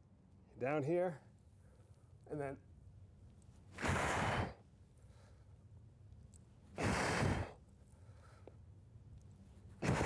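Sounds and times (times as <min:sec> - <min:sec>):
man breathing hard: 0:03.8 - 0:05.6, 0:06.8 - 0:08.7.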